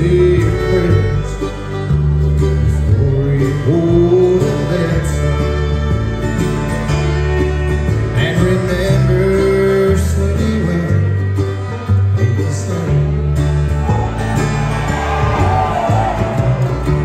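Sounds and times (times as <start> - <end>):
acoustic guitar: 0.0 - 17.0
banjo: 0.0 - 17.0
fiddle: 0.0 - 17.0
mandolin: 0.0 - 17.0
upright bass: 0.0 - 17.0.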